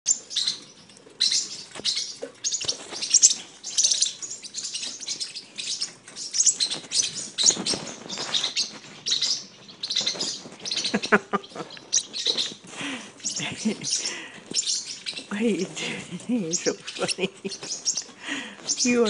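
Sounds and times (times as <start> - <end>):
bird chirping rapidly: 0.1 - 12.6, 13.2 - 15.6, 16.4 - 19.0.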